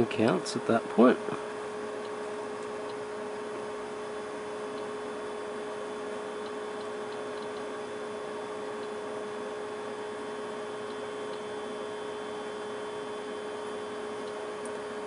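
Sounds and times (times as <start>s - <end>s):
electrical hum: 0.0s - 15.0s.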